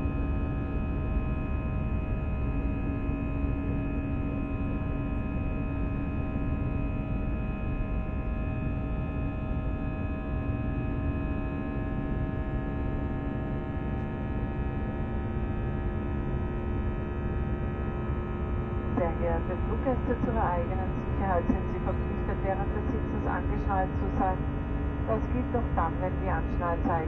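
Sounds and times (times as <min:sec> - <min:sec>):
low hum: 0:09.9 - 0:27.0
aircraft cabin rumble: 0:18.9 - 0:27.0
steady engine tones: 0:18.9 - 0:27.0.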